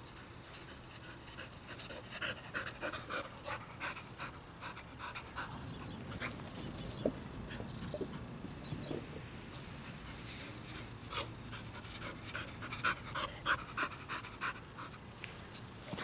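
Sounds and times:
dog panting: 0.0 - 6.5, 11.1 - 15.0.

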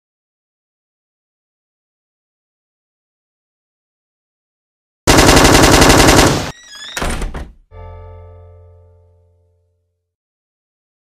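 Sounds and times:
automatic gunfire: 5.1 - 6.5
sustained musical chord: 7.8 - 9.6.

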